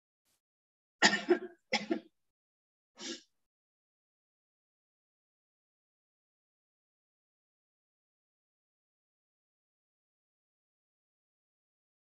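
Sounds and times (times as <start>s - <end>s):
woman coughing: 1.0s - 2.0s.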